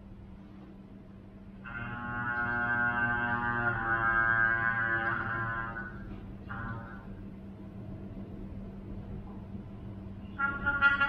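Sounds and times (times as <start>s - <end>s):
trumpet long held notes: 1.6s - 7.2s, 10.4s - 11.0s.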